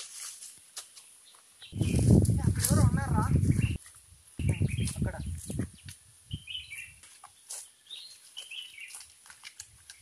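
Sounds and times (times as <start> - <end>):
bird chirping: 3.4 - 3.8, 4.4 - 9.0.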